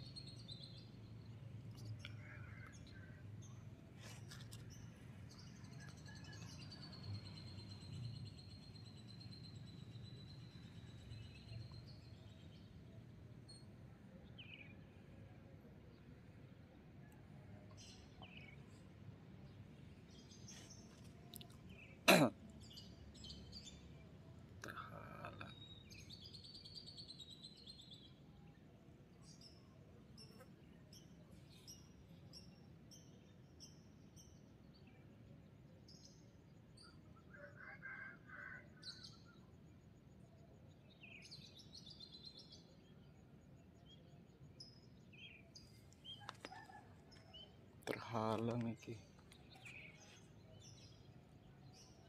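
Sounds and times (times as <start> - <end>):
person coughing: 22.1 - 22.4.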